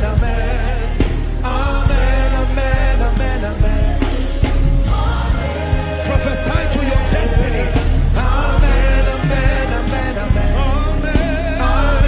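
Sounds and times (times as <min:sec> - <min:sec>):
congregation singing: 0:00.0 - 0:12.0
live band with bass and drums: 0:00.0 - 0:12.0.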